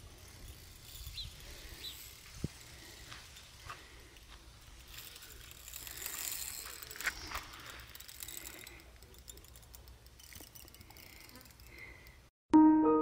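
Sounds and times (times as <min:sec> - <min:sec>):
fishing reel clicking: 0:00.2 - 0:12.2.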